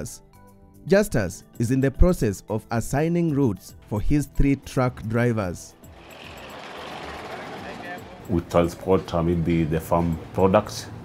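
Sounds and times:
traffic rumble and hiss: 5.9 - 11.0.

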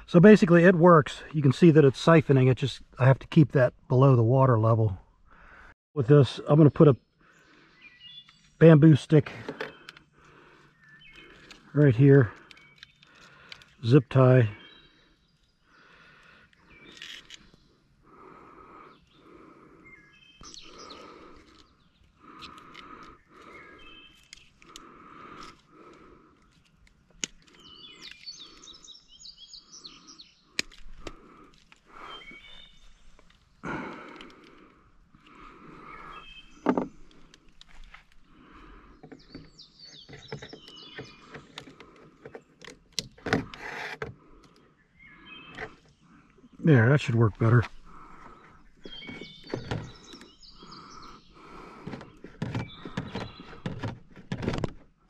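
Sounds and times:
bird calling: 5.2 - 53.9
high bird chirps: 19.8 - 22.1, 27.5 - 30.5, 32.0 - 33.2, 48.2 - 51.6
plastic tubing clicks and knocks: 36.6 - 37.4, 51.8 - 54.8.

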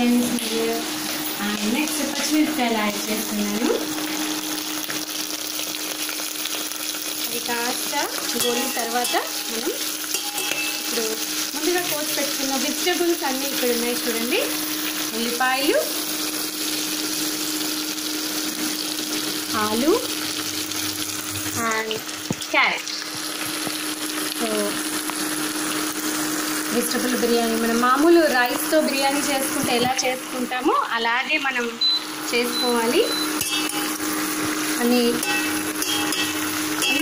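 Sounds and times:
frying sizzle: 0.0 - 37.0.

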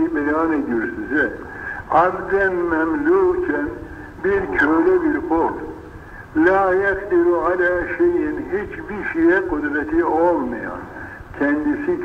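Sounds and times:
man speaking drawn-out syllables: 0.0 - 5.8, 6.4 - 12.0.

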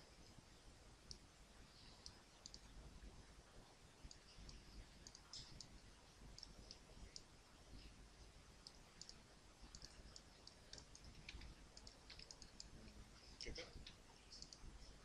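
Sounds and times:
computer mouse clicking: 2.0 - 2.7, 4.1 - 7.3, 8.6 - 12.8, 13.4 - 14.7.

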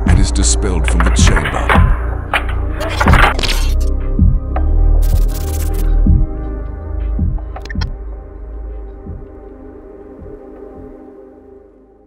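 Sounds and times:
cinematic soundtrack music: 0.0 - 12.0.

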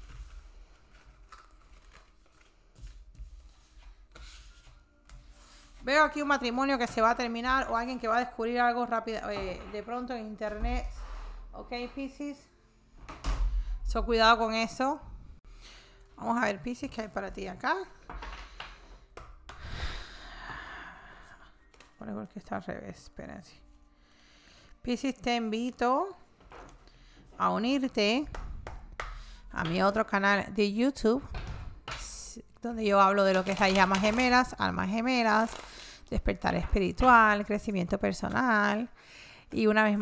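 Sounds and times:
tarot cards rustling: 0.0 - 5.8, 33.2 - 36.1.

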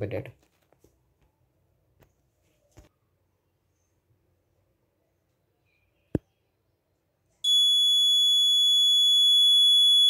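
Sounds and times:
high-pitched alarm buzzer tone: 7.5 - 10.0.

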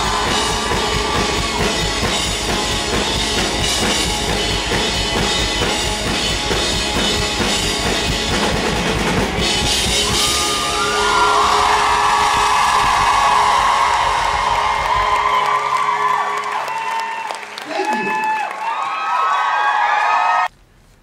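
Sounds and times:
audience whooping and cheering: 0.0 - 4.3, 8.8 - 20.5
live rock band playing: 0.0 - 16.7.

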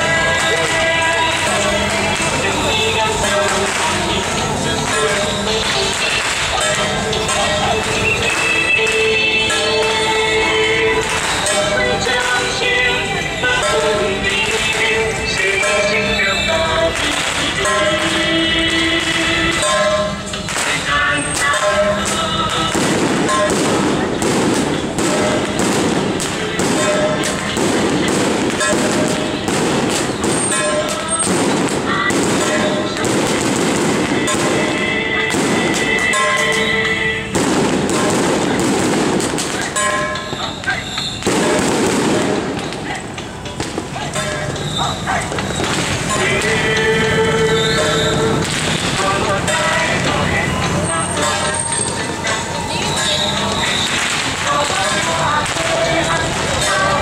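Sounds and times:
crowd voices: 0.0 - 57.0
firecrackers crackling: 0.0 - 57.0
loud procession music: 0.0 - 57.0.

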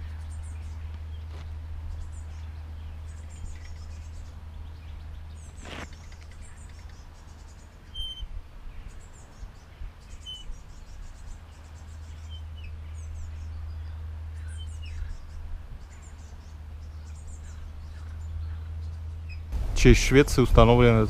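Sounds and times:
small birds chirping: 0.0 - 21.0
steady low rumble: 7.6 - 21.0.

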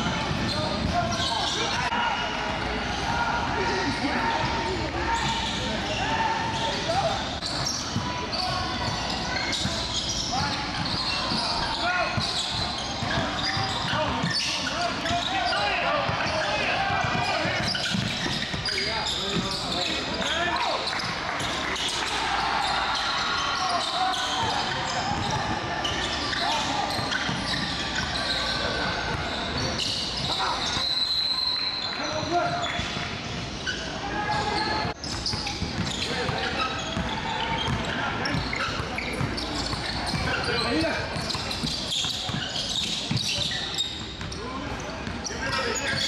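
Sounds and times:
voices calling out and chattering: 0.0 - 46.0.

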